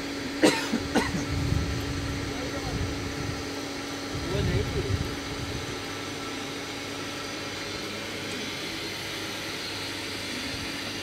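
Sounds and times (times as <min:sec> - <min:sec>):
electric stirrer motor: 0:00.0 - 0:11.0
steam kettle hum and hiss: 0:00.0 - 0:11.0.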